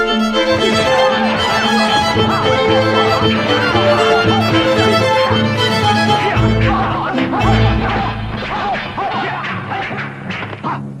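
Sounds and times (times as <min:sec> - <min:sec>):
low drone: 0:00.0 - 0:09.5
film soundtrack music: 0:00.0 - 0:10.6
fighters shouting: 0:06.4 - 0:10.0.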